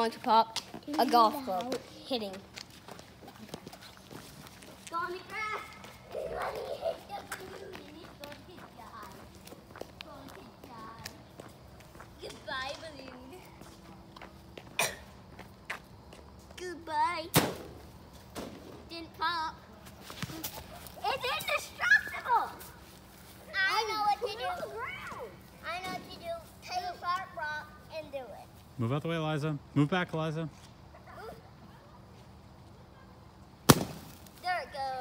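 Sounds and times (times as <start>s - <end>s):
children talking and calling out: 0.0s - 15.4s, 18.8s - 28.7s, 30.8s - 32.1s, 34.3s - 35.0s.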